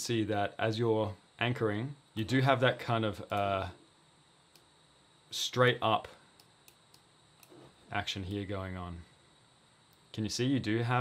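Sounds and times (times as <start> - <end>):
man narrating: 0.0 - 3.8, 7.9 - 9.1, 10.2 - 11.0.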